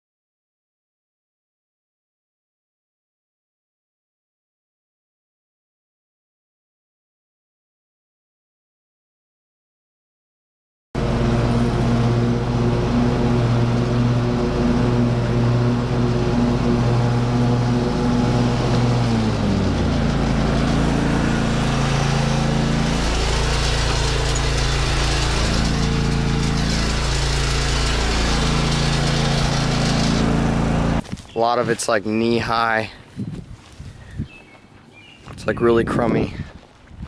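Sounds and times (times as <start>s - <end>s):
lawn mower engine running: 11.0s - 31.0s.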